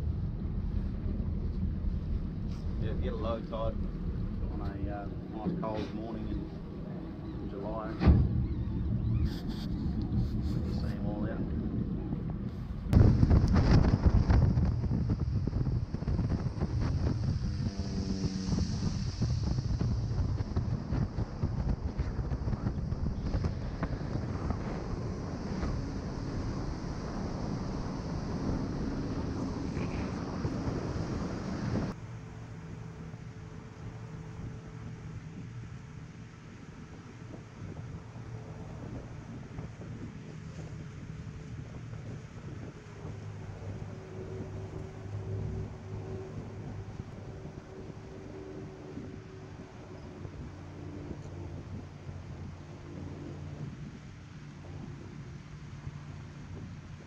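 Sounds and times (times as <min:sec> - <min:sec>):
motor boat engine: 0:00.0 - 0:57.0
wind rushing over microphone: 0:00.0 - 0:57.0.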